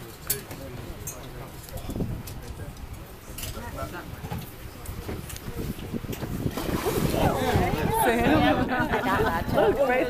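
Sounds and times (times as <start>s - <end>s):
water: 0.0s - 10.0s
wind rumble on microphone: 1.5s - 10.0s
people talking: 6.8s - 10.0s.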